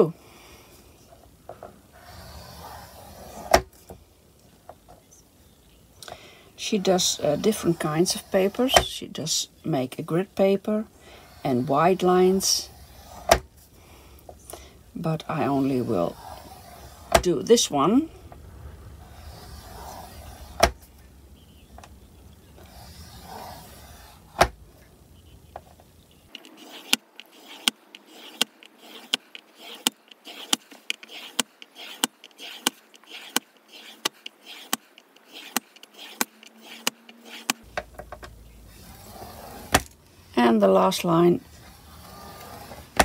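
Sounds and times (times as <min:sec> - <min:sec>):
scoring tool clicking in grooves: 0:26.3 - 0:38.2.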